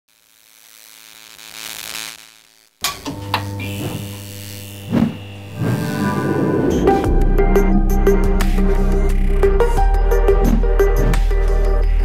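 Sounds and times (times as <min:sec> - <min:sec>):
electronic music: 0:05.5 - 0:12.0.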